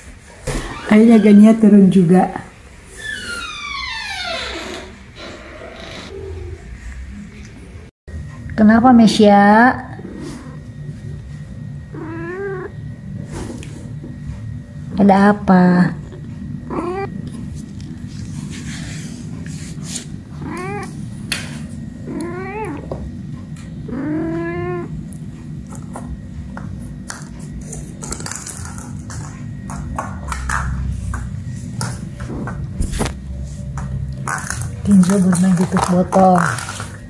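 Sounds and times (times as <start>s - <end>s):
cat meowing: 11.9s - 12.7s, 16.7s - 17.1s, 20.3s - 21.0s, 22.0s - 22.9s, 23.9s - 25.0s.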